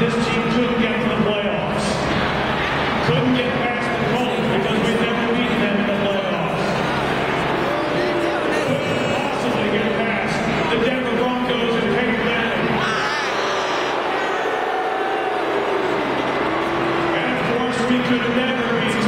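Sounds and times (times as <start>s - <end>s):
stadium crowd din: 0.0s - 19.0s.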